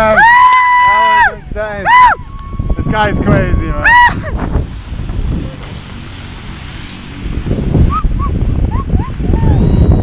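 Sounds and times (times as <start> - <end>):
wind buffeting microphone: 1.0 - 10.0.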